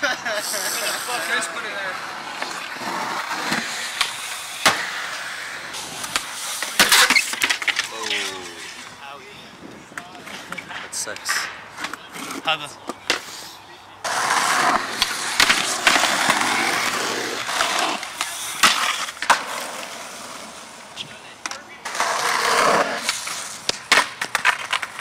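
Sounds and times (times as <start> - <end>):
skateboard wheels rolling on concrete: 0.0 - 25.0
skateboard clacking on ground: 6.0 - 9.0, 9.9 - 13.4, 14.0 - 19.8, 21.0 - 25.0.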